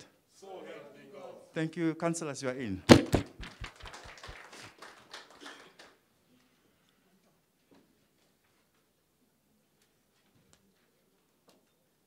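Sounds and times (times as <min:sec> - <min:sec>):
people clapping: 0:02.9 - 0:06.1.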